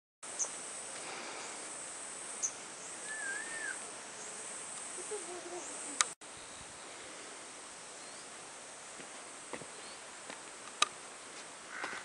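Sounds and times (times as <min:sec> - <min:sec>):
steady hiss: 0:00.2 - 0:12.0
high insect-like whine: 0:00.3 - 0:06.6
small birds chirping: 0:02.3 - 0:07.2.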